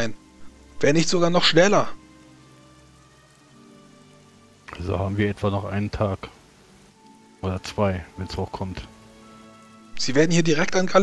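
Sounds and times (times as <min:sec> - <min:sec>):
faint rain: 0:00.0 - 0:11.0
soft music bed: 0:00.0 - 0:11.0.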